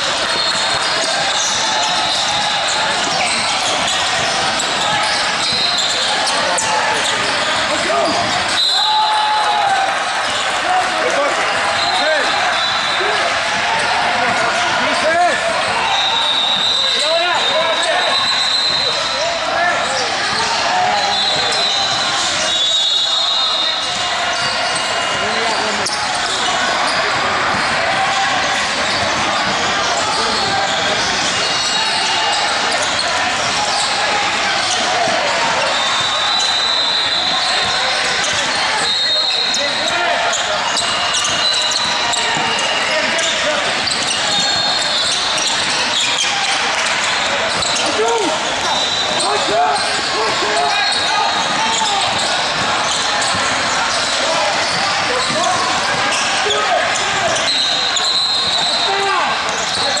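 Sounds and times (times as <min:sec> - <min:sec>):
basketballs bouncing: 0:00.0 - 1:00.0
voices chattering: 0:00.0 - 1:00.0.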